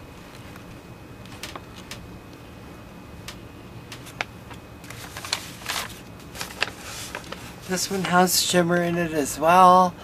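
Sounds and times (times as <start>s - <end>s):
paper rustling: 3.9s - 9.1s.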